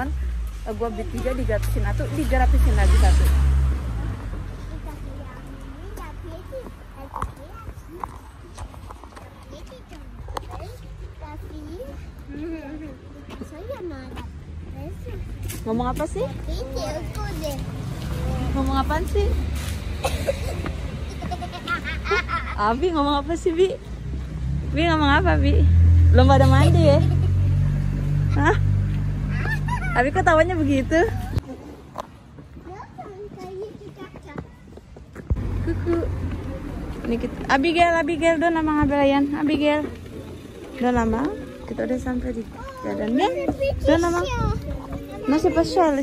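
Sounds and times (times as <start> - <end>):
vehicle engine humming: 0.0 - 32.4, 35.2 - 46.0
footsteps on pavement: 0.0 - 46.0.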